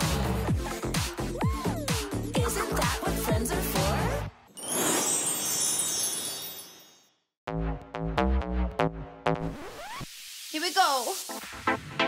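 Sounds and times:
shimmering chime sound effect: 4.5 - 7.3.

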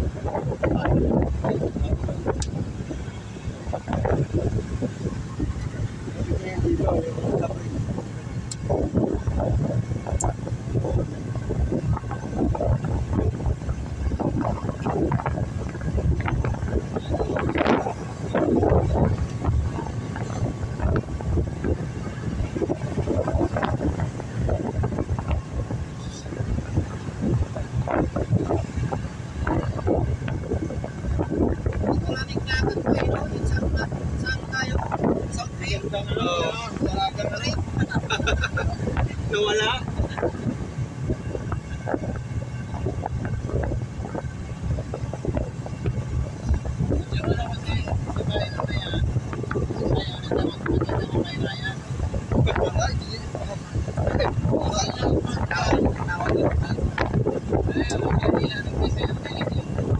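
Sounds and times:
van engine and tyres rumbling: 0.0 - 59.9.

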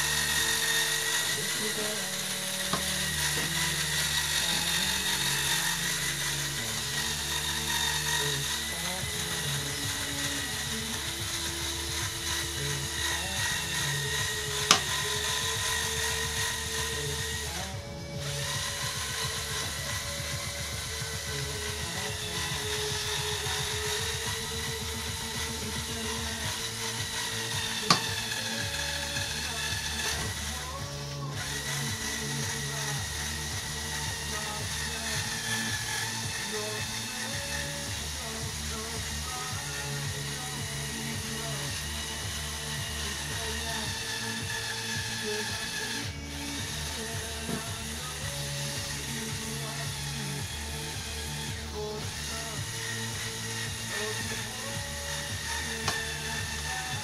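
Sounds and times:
background music: 0.0 - 57.0
toy electric motors whining: 0.0 - 57.0.

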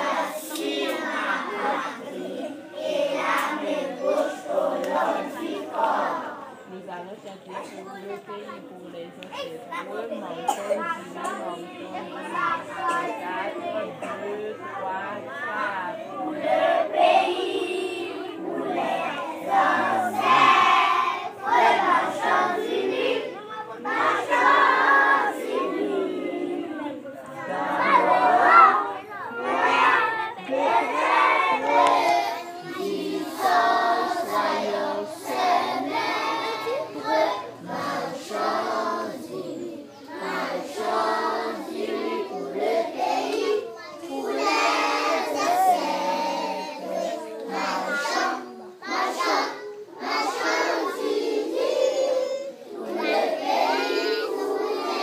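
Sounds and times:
children chattering: 0.0 - 55.0.

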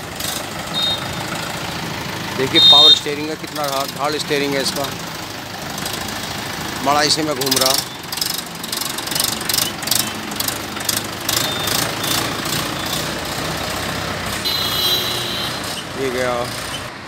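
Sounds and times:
tractor diesel engine running: 0.0 - 17.0
short high-pitched squeal: 11.3 - 13.1.

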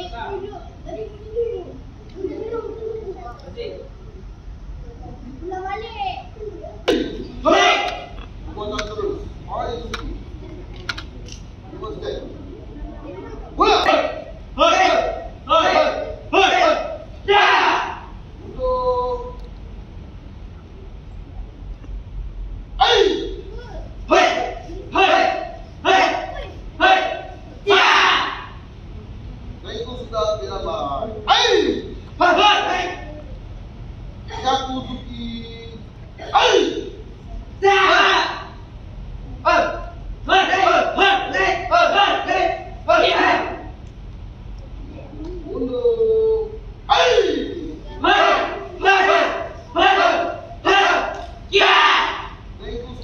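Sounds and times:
group shouting kiai: 6.9 - 8.2, 13.6 - 18.1, 22.8 - 23.4, 24.1 - 28.6, 31.2 - 33.1, 36.2 - 37.0, 37.6 - 38.6, 39.4 - 43.8, 46.1 - 52.4.

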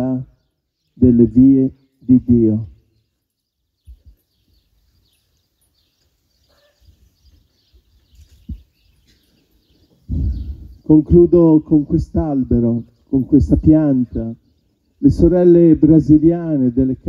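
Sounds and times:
man speaking: 1.0 - 2.8, 10.8 - 14.4, 15.0 - 17.0.

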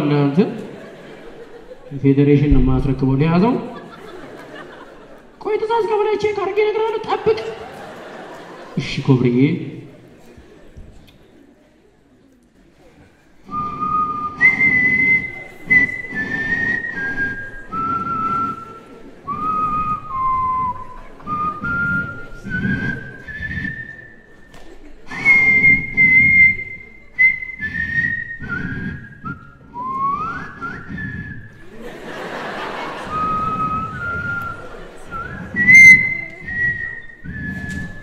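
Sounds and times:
man whistling a slow tune: 13.5 - 24.4, 25.1 - 31.6, 33.0 - 38.0.

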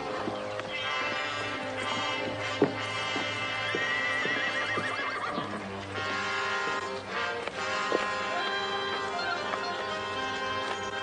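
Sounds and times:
hoof knocks: 0.0 - 11.0
orchestral music: 0.0 - 11.0
horse neighing: 0.7 - 6.9.

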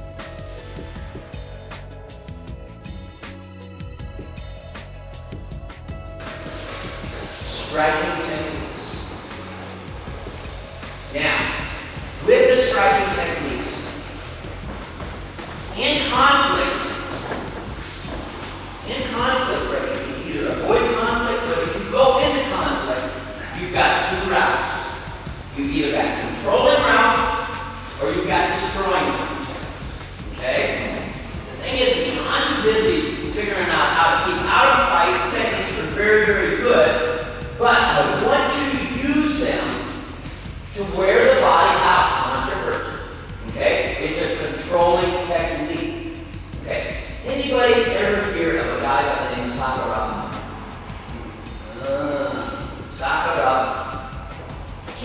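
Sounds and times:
man speaking: 7.3 - 9.3, 11.1 - 14.2, 15.6 - 17.4, 18.7 - 40.0, 40.7 - 50.5, 51.1 - 54.2
person talking: 7.4 - 9.2, 11.1 - 14.1, 15.7 - 17.6, 18.8 - 29.7, 51.6 - 54.1.

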